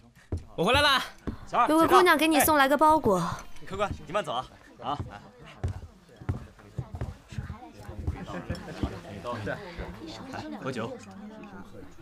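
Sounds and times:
faint murmured voices: 3.1s - 12.0s.

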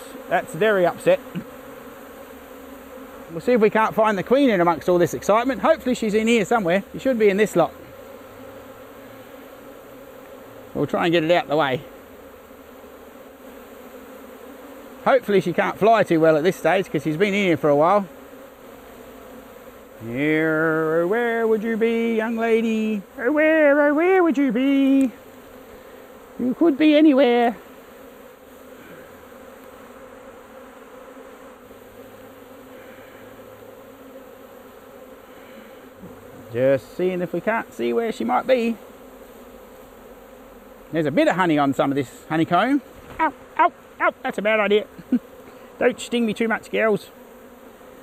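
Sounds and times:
bee swarm buzzing: 0.0s - 48.0s.

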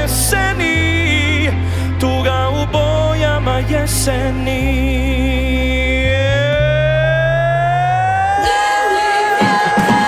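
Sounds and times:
low sustained backing chords: 0.0s - 8.3s
man singing a long high note: 0.0s - 10.0s.

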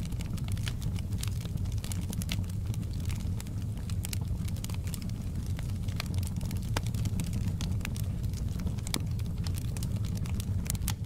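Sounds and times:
fire crackling and popping: 0.0s - 11.0s
low rumble of flames: 0.0s - 11.0s.

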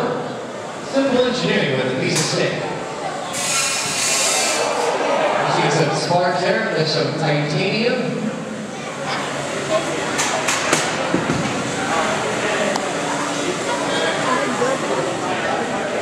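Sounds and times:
crowd chattering: 0.0s - 16.0s.

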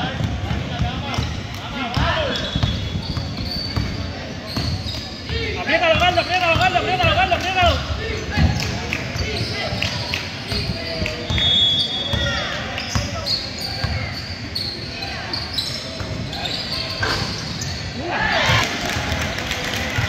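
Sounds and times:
basketball bouncing on court: 0.0s - 7.5s, 8.4s - 11.4s
people shouting: 18.0s - 19.1s.

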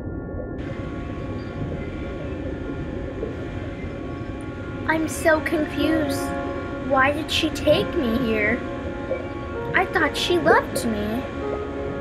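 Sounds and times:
underwater rumble and rushing water: 0.0s - 12.0s.

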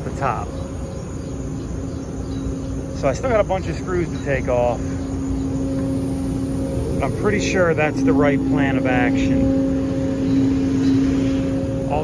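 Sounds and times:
machinery humming: 0.0s - 12.0s.

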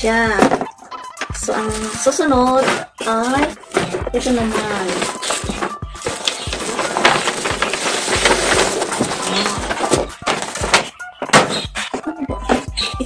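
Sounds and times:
paper bag rustling and crinkling: 1.4s - 11.6s.

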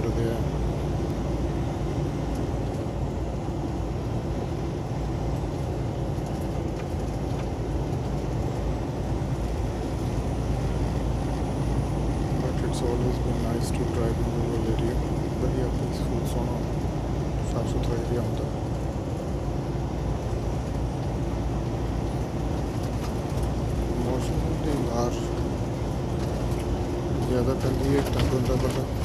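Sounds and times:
road noise: 0.0s - 29.0s
truck engine drone: 0.0s - 29.0s.

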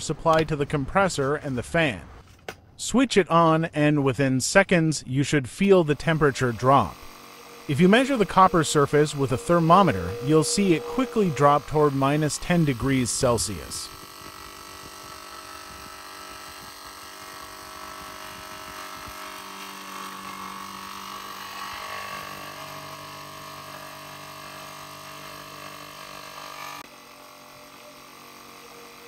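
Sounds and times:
compressor and fan humming: 5.6s - 29.0s.

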